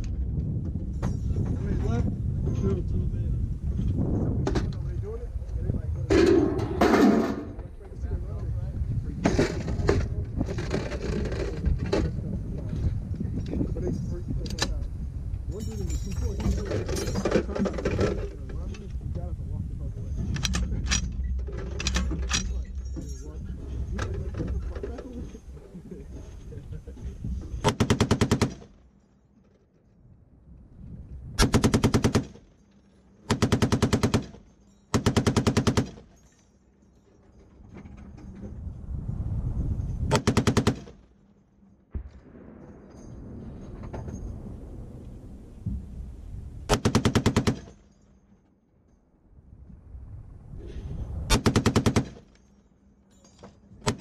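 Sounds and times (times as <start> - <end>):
heavy machine gun bursts: 31.4 - 32.4, 33.3 - 36.1, 46.7 - 47.8, 51.3 - 52.3.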